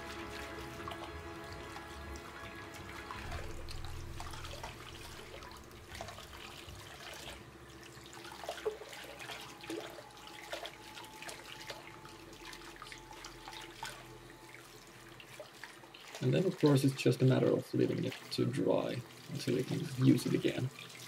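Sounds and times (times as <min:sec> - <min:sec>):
small splashes: 0:00.0 - 0:21.0
tap water running into sink: 0:00.0 - 0:21.0.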